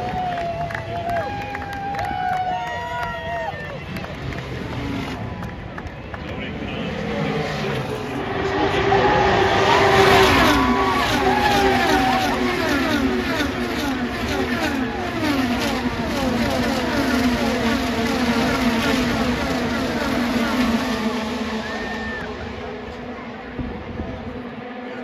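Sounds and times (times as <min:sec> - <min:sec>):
race cars passing at speed: 0:00.0 - 0:25.0.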